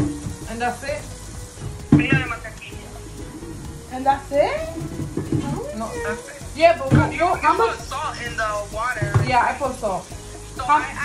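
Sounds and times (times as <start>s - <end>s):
person speaking: 2.0s - 2.8s, 5.4s - 9.6s.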